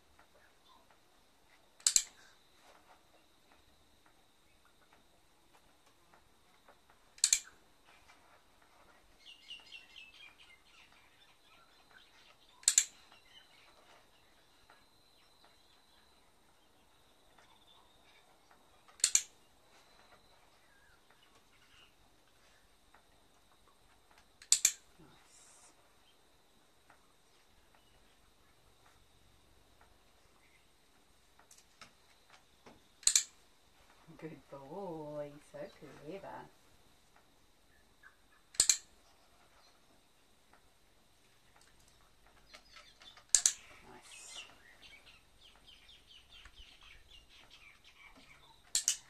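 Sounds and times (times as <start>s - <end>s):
dog training clicker clicks: 1.8s - 2.1s, 7.2s - 7.5s, 12.6s - 12.9s, 19.0s - 19.3s, 24.4s - 24.8s, 33.0s - 33.3s, 38.5s - 38.9s, 43.2s - 43.6s, 48.7s - 49.0s
bird chirping: 8.8s - 22.7s, 30.0s - 31.0s, 37.6s - 40.2s, 41.2s - 49.0s.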